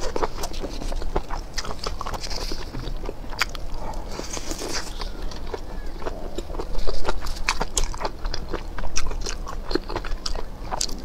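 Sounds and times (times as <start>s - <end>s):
close chewing of meat: 0.0s - 11.0s
low steady hum: 0.0s - 11.0s.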